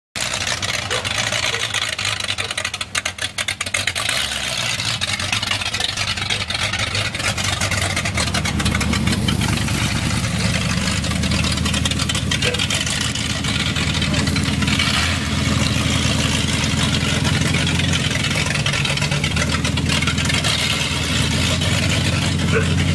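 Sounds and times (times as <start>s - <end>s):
engine rumbling low: 0.2s - 22.9s.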